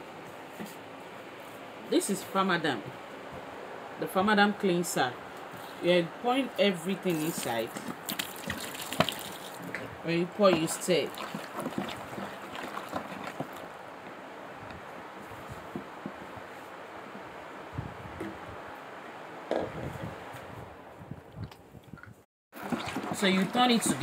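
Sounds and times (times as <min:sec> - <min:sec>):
thick liquid swishing in bowl: 0:07.1 - 0:13.8, 0:22.6 - 0:24.0.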